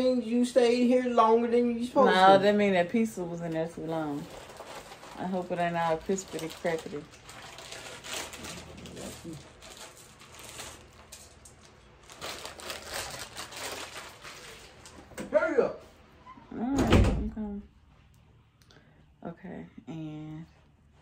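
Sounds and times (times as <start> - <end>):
person's voice: 0.0 - 4.2.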